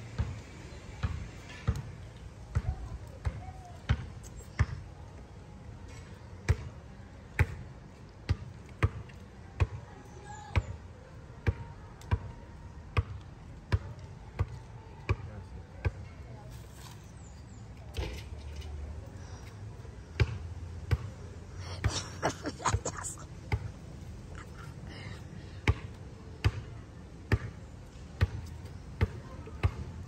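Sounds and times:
steady low background noise: 0.0 - 30.0.

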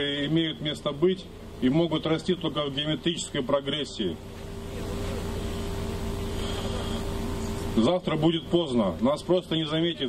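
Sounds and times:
motor running steadily: 0.0 - 10.0.

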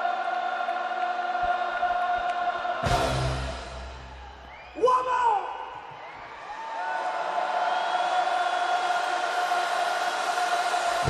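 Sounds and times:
concert crowd cheering: 0.0 - 11.0.

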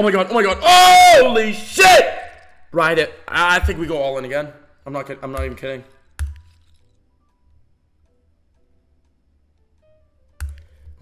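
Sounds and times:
faint background music: 0.0 - 11.0
casino chips clinking: 5.4 - 7.0.

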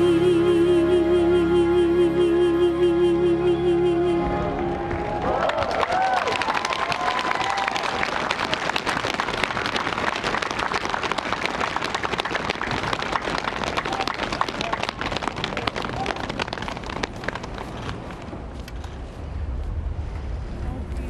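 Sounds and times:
audience applauding: 4.6 - 18.1.

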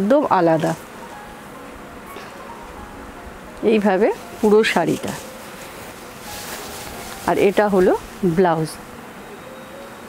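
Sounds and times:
fabric rustling: 4.0 - 8.8.

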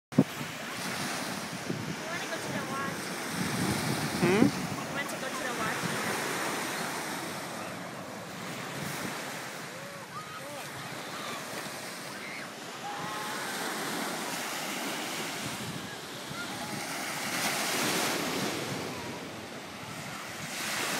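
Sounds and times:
wind buffeting microphone: 0.1 - 10.1, 12.8 - 20.9
small waves breaking on sand: 0.2 - 20.9.

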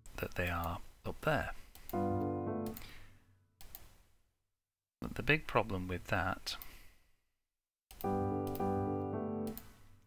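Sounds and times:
piano chords: 2.0 - 2.8, 8.0 - 9.9.

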